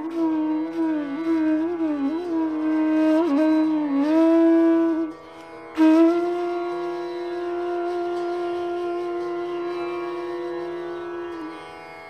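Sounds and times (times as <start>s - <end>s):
bamboo flute long note: 0.0s - 11.6s.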